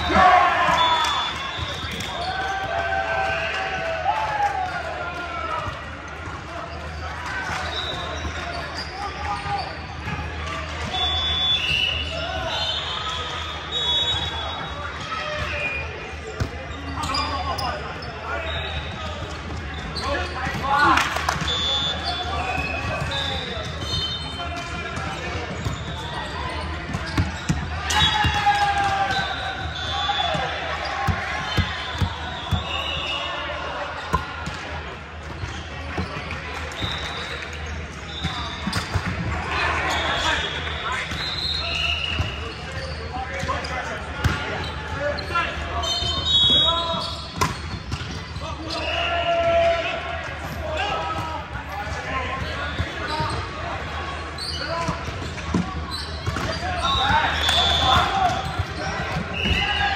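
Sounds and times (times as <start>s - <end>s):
voices and shouts: 0.0s - 6.0s, 27.3s - 35.0s, 48.3s - 55.1s, 55.9s - 59.9s
shoe squeaks: 7.6s - 9.9s, 15.5s - 20.5s, 21.5s - 28.4s, 35.3s - 39.1s, 39.9s - 44.0s, 44.6s - 49.1s, 52.3s - 53.6s, 54.2s - 59.9s
volleyballs struck and bouncing: 47.3s - 48.3s.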